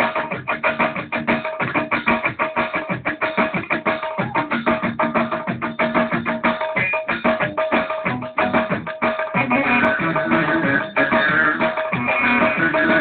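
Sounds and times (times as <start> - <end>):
folk dance music on electronic keyboard: 0.0 - 13.0.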